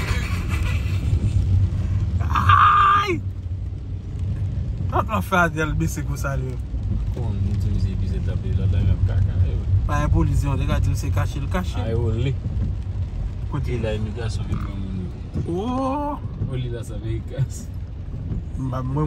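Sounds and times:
car cabin rumble: 0:00.0 - 0:19.0.

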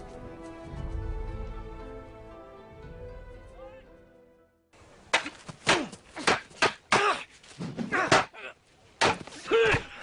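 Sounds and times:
film score music: 0:00.0 - 0:04.7.

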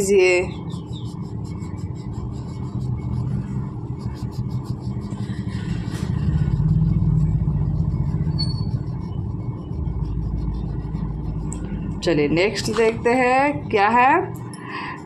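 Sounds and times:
crayon scratching on paper: 0:00.0 - 0:13.3
vehicle rumble passing: 0:00.0 - 0:14.6.

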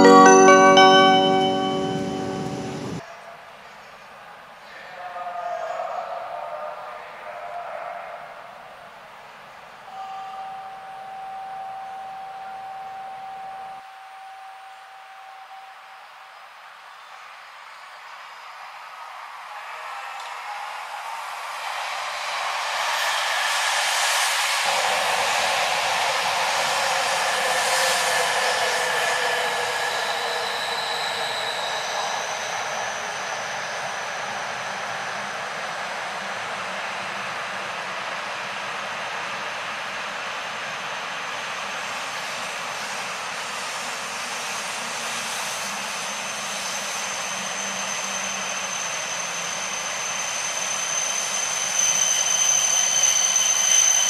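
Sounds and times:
thin high whine: 0:00.0 - 0:03.0
train rushing noise: 0:19.2 - 0:54.0.

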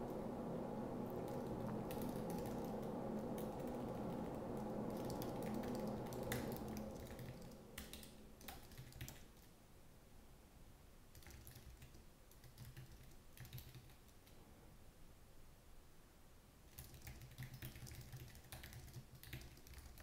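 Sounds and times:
low hum: 0:00.0 - 0:09.2
typing on computer keyboard: 0:01.3 - 0:02.8, 0:04.9 - 0:09.5, 0:11.1 - 0:14.4, 0:16.7 - 0:20.0.

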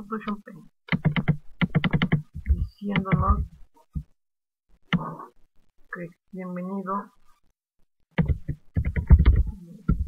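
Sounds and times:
fast typing on laptop keyboard: 0:00.9 - 0:03.4, 0:08.2 - 0:10.0.

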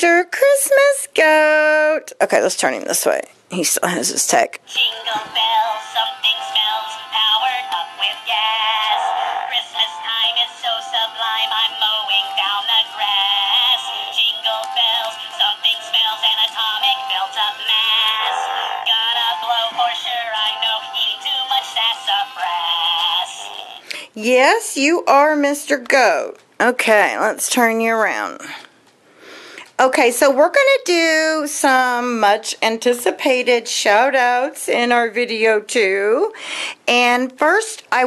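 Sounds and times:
tinny toy singing with music: 0:04.6 - 0:23.9.

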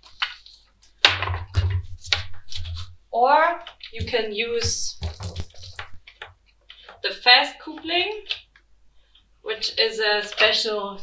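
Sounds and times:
handling rustles: 0:03.8 - 0:06.2.

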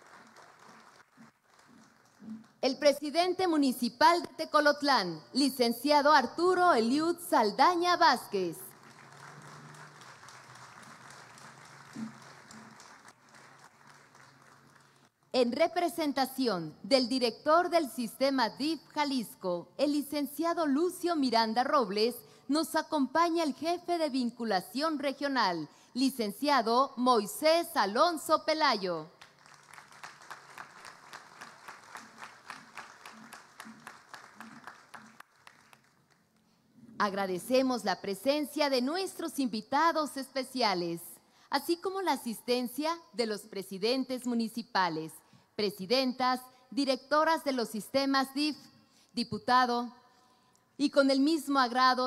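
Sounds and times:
audience applause: 0:00.0 - 0:02.3, 0:08.7 - 0:15.0, 0:29.3 - 0:36.1.

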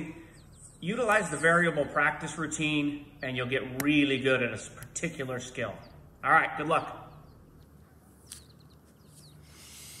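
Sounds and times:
low steady hum: 0:00.0 - 0:10.0
small birds chirping: 0:00.0 - 0:10.0.

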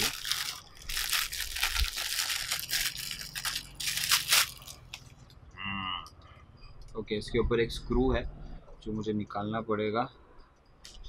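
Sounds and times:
plastic packaging crinkling: 0:00.0 - 0:05.1.

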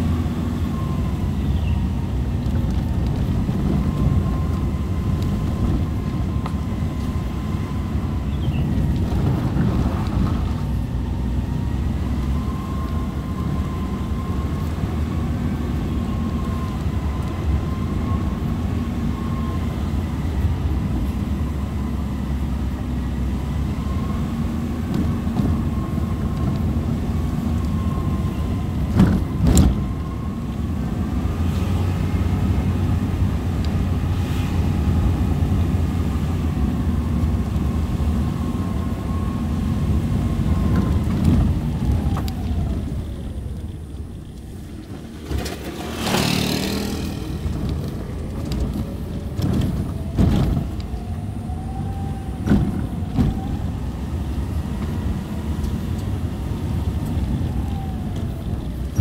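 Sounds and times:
car engine with road rumble: 0:00.0 - 0:59.0.

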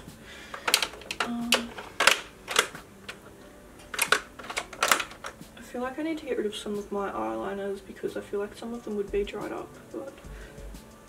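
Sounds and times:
plastic tubes clattering in organizer: 0:00.5 - 0:03.2, 0:03.8 - 0:05.4.

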